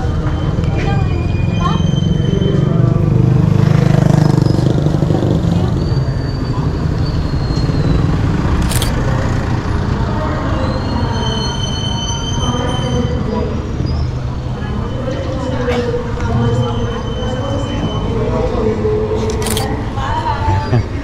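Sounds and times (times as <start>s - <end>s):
street traffic: 0.0s - 21.0s
sharp click: 8.6s - 9.0s, 19.3s - 19.8s.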